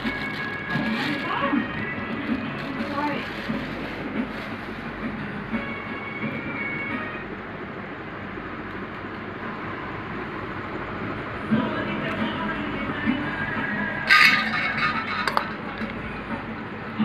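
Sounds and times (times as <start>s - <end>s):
faint voices: 0.0s - 4.6s
music: 0.0s - 8.6s, 11.2s - 17.0s
steady rumble of noise: 0.0s - 17.0s.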